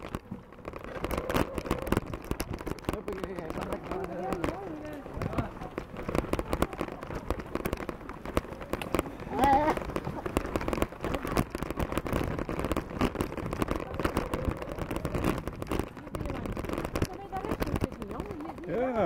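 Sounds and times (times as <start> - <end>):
bicycles rattling on dirt track: 0.0 - 19.0.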